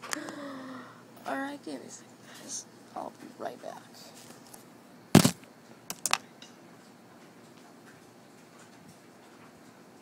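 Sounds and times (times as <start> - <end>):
camera handling thump: 5.2 - 5.4.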